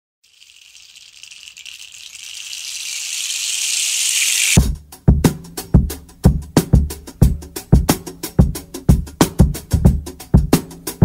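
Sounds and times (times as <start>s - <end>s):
shaker rolling: 0.2s - 4.6s.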